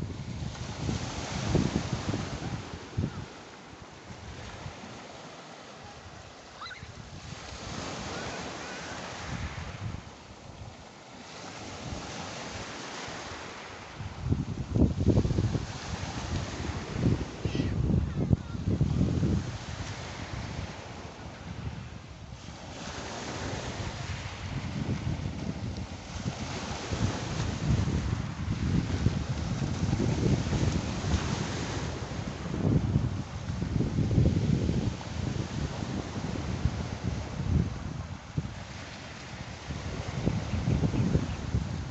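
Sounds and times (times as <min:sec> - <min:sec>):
wind buffeting microphone: 0:00.0 - 0:05.2, 0:05.9 - 0:10.7, 0:11.6 - 0:41.9
waves washing over pebbles: 0:00.0 - 0:17.5.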